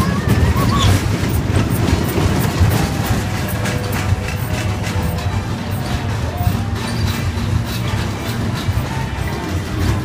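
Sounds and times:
fairground music: 0.0s - 10.0s
roller coaster rumbling and clicking: 0.0s - 10.0s.

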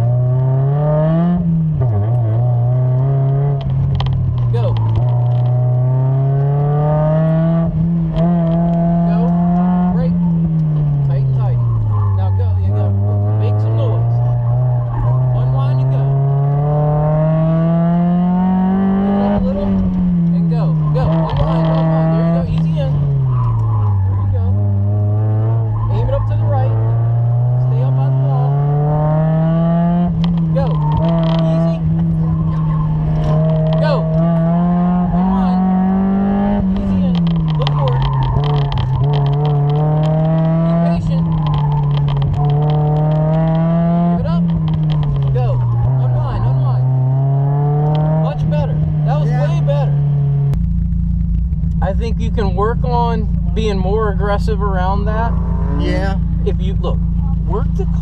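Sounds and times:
car engine revving: 0.0s - 58.0s.

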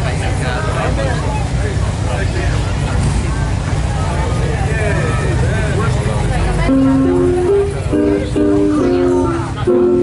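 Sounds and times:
people chatting: 0.0s - 10.0s
steady low rumble: 0.0s - 10.0s.

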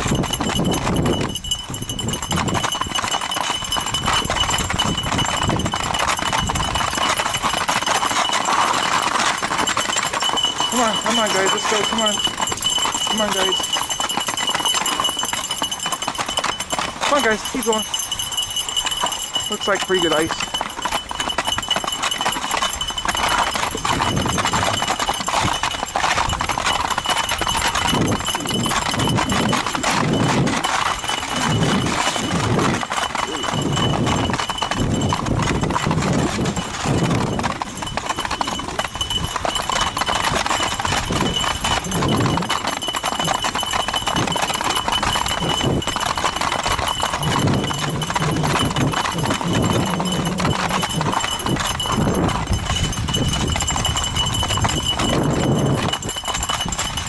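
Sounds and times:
dogs' feet running on ice: 0.0s - 57.0s.

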